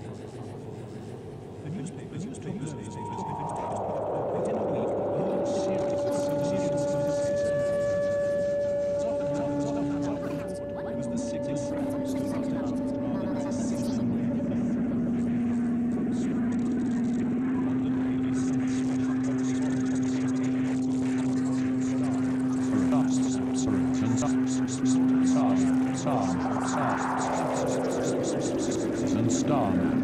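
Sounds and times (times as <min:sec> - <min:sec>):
low synthesizer drone: 0:00.0 - 0:30.0
rising and falling pitch sweeps: 0:02.4 - 0:30.0.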